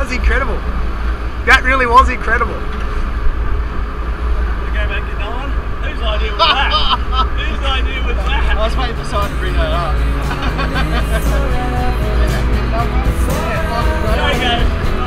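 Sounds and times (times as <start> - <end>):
men talking: 0.0 - 0.8, 1.4 - 2.9, 4.4 - 15.0
fishing boat engine rumble: 2.9 - 15.0.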